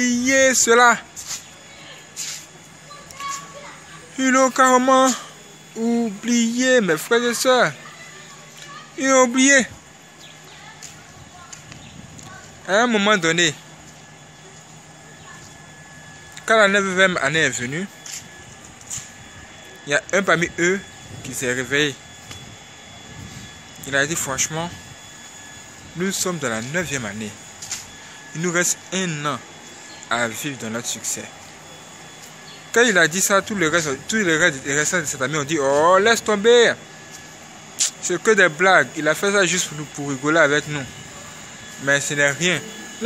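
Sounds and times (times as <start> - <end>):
man speaking: 0.0 - 1.2, 3.9 - 7.8, 8.4 - 9.8, 12.6 - 13.7, 16.3 - 18.2, 19.7 - 22.1, 23.8 - 24.9, 25.7 - 27.5, 28.3 - 31.4, 32.7 - 36.8, 37.8 - 43.0
distant voices: 0.0 - 43.0.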